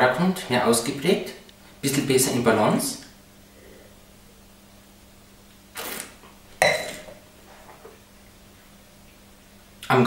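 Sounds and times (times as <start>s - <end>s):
short hiss: 5.7s - 6.2s
wine slurped with air: 5.7s - 6.2s
wine glass set down: 6.6s - 7.2s.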